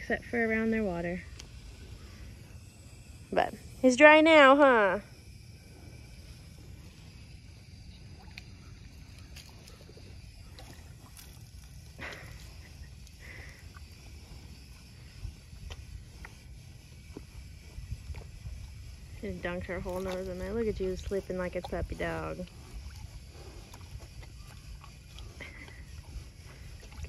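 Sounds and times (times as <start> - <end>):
cattle slurping water: 0.0 - 27.0
low steady rumble: 0.0 - 27.0.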